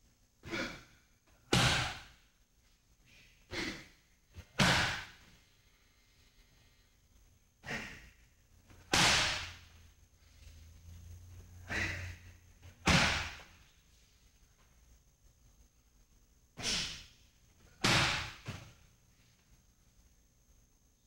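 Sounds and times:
punches hitting leather pads: 0:01.5 - 0:02.1, 0:04.4 - 0:05.2, 0:08.8 - 0:09.6, 0:12.8 - 0:13.5, 0:17.8 - 0:18.6
sharp hissing exhale: 0:16.6 - 0:17.2.

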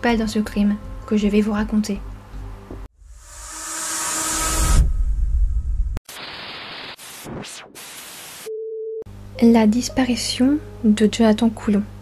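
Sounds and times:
hissing swell: 0:03.0 - 0:05.4
low rumble: 0:03.0 - 0:06.0
tv static bursts: 0:06.1 - 0:08.5.

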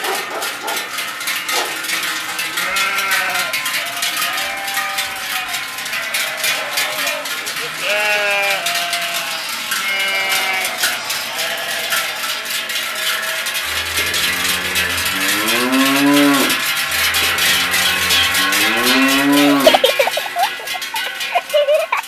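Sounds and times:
cowbells clanging: 0:00.0 - 0:22.0
cattle mooing: 0:02.4 - 0:21.2.

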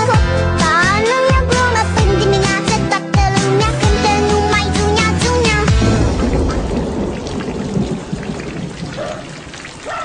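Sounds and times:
low rumble: 0:05.6 - 0:09.0
steady rain-like crackling: 0:05.8 - 0:10.0.

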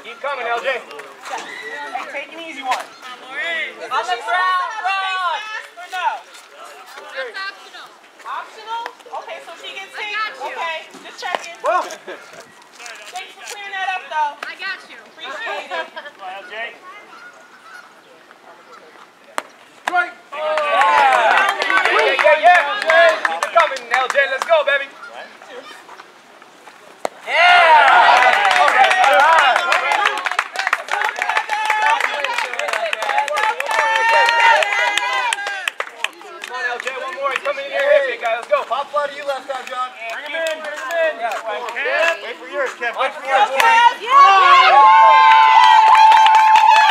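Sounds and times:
people talking and calling out: 0:00.0 - 0:46.9
crowd cheering and shouting: 0:19.9 - 0:23.4, 0:27.2 - 0:38.1, 0:43.0 - 0:46.9
people clapping: 0:19.9 - 0:24.6, 0:27.4 - 0:46.9.

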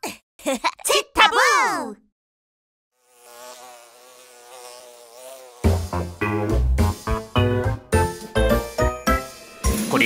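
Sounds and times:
cartoon insect wings buzzing: 0:03.0 - 0:07.3.

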